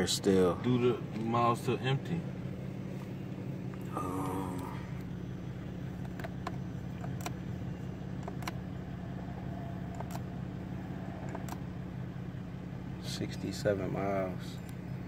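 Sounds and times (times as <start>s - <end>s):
car engine idling: 0.0s - 15.0s.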